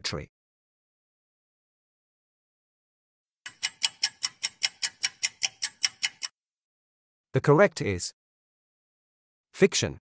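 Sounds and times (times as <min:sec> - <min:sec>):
clock ticking: 0:03.5 - 0:06.3.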